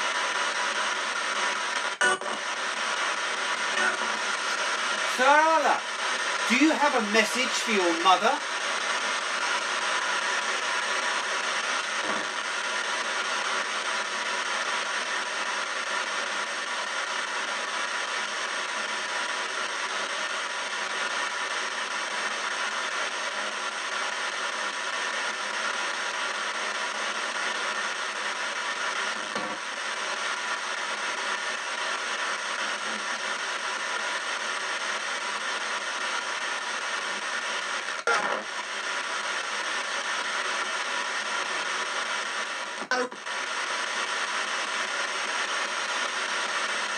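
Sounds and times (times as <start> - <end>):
radio static hiss: 0.0 - 46.9.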